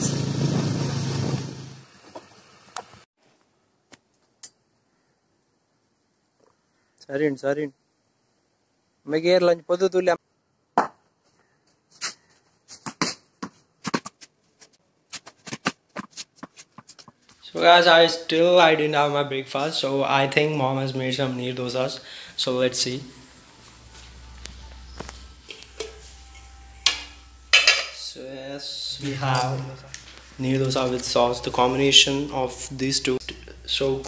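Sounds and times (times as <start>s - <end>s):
footsteps: 11.2s - 17.6s, 22.7s - 28.0s, 28.8s - 31.9s
steel lid clanking on kitchenware: 26.8s - 28.0s.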